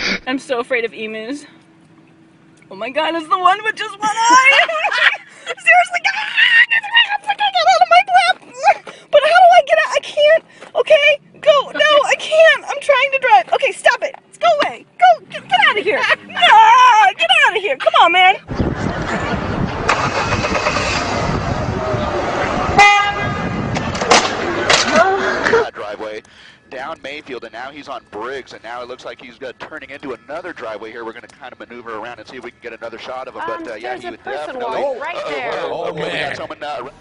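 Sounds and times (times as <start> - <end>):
street traffic noise: 0.0 - 37.0
car horn toot: 22.7 - 24.8.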